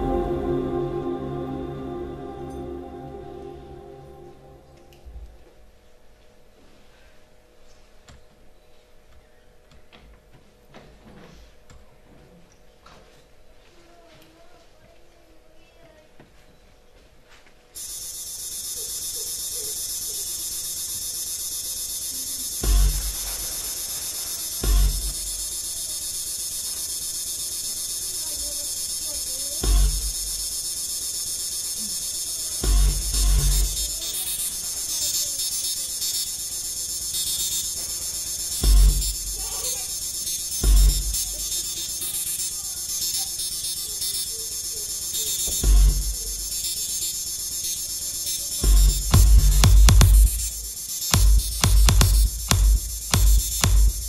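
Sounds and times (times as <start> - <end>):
high buzzing drone: 0.0 - 5.4, 17.8 - 54.0
deep bass thuds: 22.6 - 23.4, 24.6 - 25.5, 29.6 - 30.5, 32.6 - 34.0, 38.6 - 39.4, 40.6 - 41.4, 45.6 - 46.5, 48.6 - 54.0.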